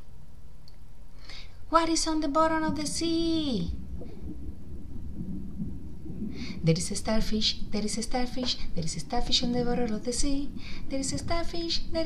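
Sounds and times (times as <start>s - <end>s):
low muffled rumbling: 2.1s - 12.0s
faint wavering low tones: 2.7s - 12.0s.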